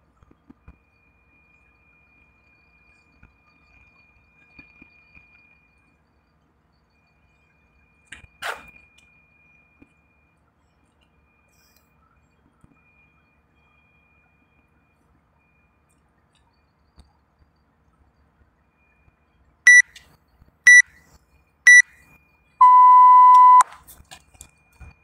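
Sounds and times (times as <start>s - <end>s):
longer lower beep: 19.7s - 19.9s, 22.6s - 23.6s
short high beeps: 19.7s - 19.9s, 20.7s - 20.9s, 22.6s - 23.6s.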